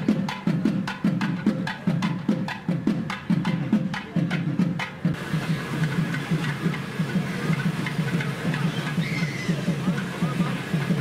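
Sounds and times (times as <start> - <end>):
crowd noise: 0.0 - 11.0
drumming: 0.0 - 11.0.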